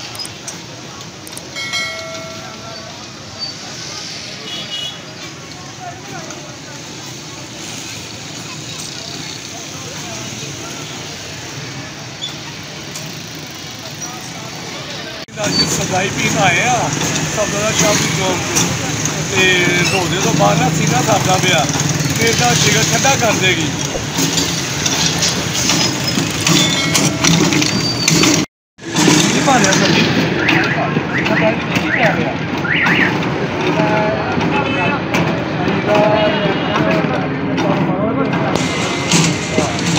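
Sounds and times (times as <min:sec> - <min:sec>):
faint indistinct voices: 0:00.0 - 0:24.1, 0:29.4 - 0:39.9
steady traffic noise: 0:00.0 - 0:39.9.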